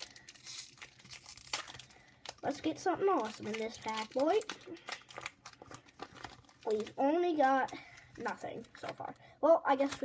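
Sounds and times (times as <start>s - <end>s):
foil wrapper crinkling and tearing: 0.0s - 10.0s.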